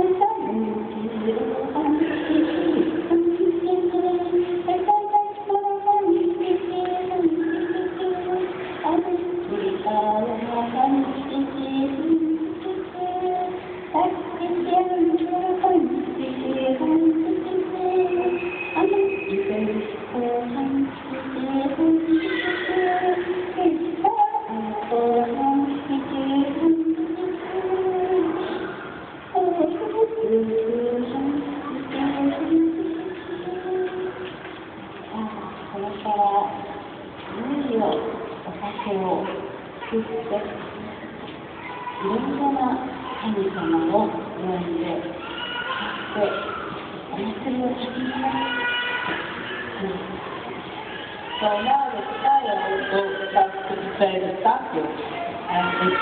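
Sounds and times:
woman singing folk song: 0.0 - 34.4.

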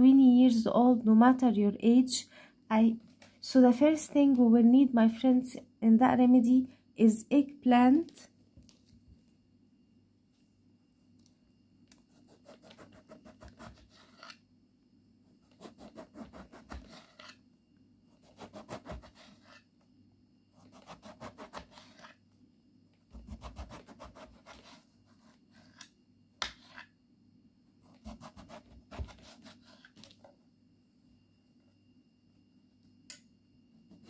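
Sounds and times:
knife sawing through eggplant: 12.4 - 14.4, 15.5 - 17.4, 18.2 - 19.6, 20.6 - 22.2, 23.2 - 24.8, 27.9 - 29.9.

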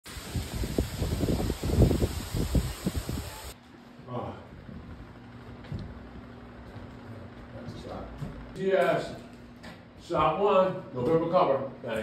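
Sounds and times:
wind buffeting microphone: 0.2 - 3.5.

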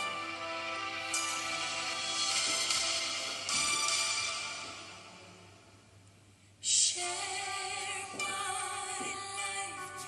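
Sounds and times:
woman singing with backing music: 6.7 - 10.0.

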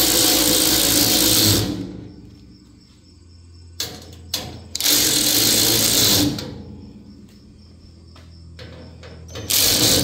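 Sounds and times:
cordless ratchet motor running: 0.0 - 1.7, 9.5 - 10.0.

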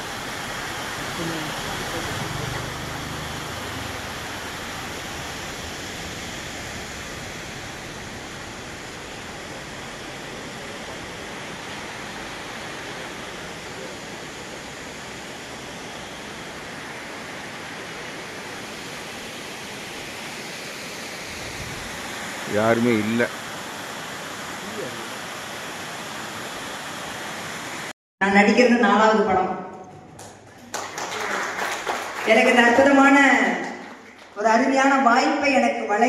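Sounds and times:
waterfall rushing: 0.0 - 27.9.

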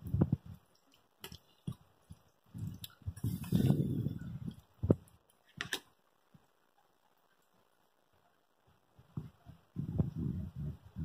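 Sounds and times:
spoon stirring macaroni and cheese: 0.3 - 7.6.

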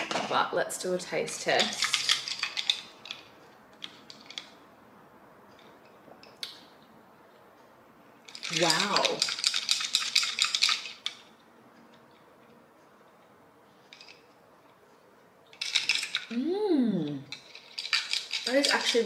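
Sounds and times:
ice cubes clinking in a glass: 8.3 - 11.0, 17.3 - 19.0
person humming: 16.3 - 17.3.

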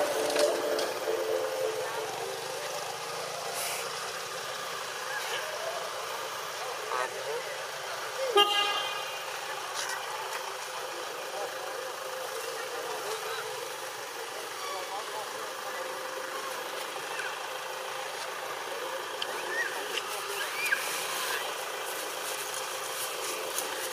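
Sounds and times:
faint distant voices: 0.0 - 23.9
outdoor background noise: 0.0 - 23.9.

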